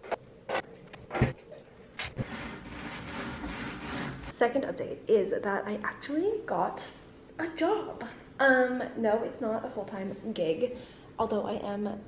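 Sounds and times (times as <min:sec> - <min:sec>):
roller blind rubbing rasp: 0:02.0 - 0:04.4.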